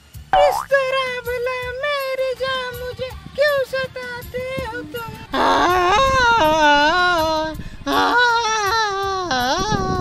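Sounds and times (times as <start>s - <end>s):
high-pitched wailing voice: 0.4s - 0.7s, 5.4s - 8.7s.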